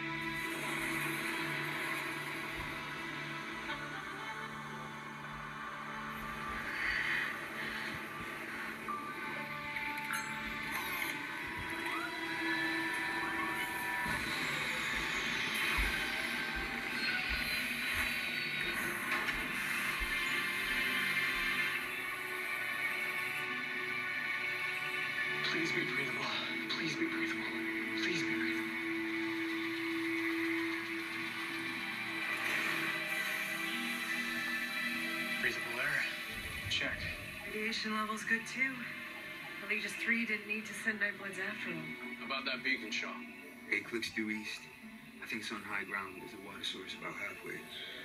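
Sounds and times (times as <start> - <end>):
music from television speakers: 0.0 - 41.6.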